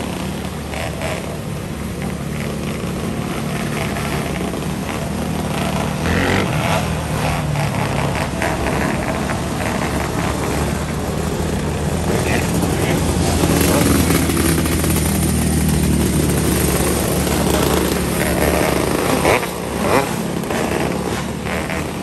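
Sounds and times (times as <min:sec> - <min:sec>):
race car engines: 0:00.0 - 0:22.0.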